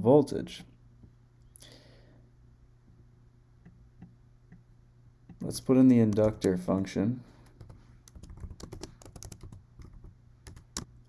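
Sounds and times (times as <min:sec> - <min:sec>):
computer keyboard typing: 0:05.8 - 0:06.7, 0:07.4 - 0:10.9.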